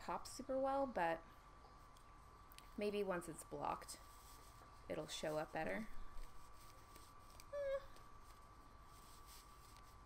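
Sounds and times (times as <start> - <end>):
dog whimper: 7.5 - 8.0.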